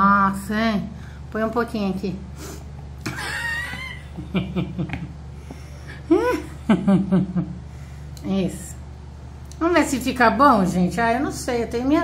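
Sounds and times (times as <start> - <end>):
person laughing: 3.0 - 5.2, 5.9 - 7.6.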